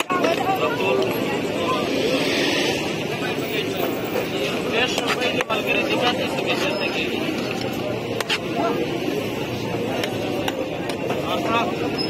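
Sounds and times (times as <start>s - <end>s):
passing traffic rush: 0.0s - 12.0s
people talking: 0.0s - 12.0s.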